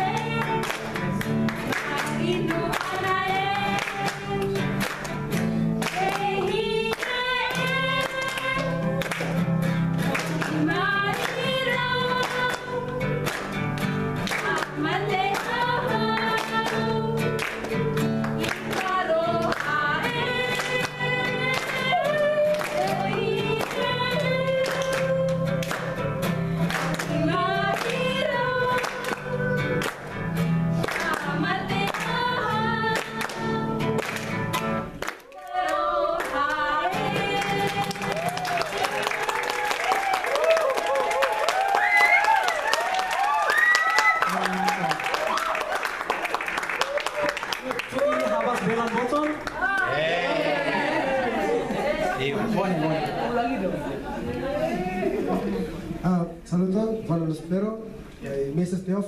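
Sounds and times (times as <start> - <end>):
women singing: 0.0 - 5.0, 5.8 - 9.4, 10.0 - 13.2, 14.2 - 17.6, 18.4 - 26.0, 26.8 - 29.8, 30.8 - 34.0, 35.3 - 38.7
strummed acoustic guitar: 0.0 - 35.0.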